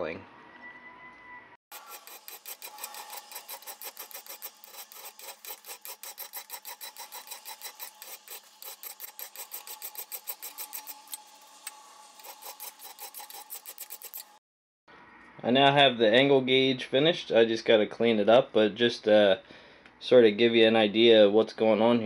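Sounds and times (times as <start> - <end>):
hand file scraping steel: 1.7 - 14.4.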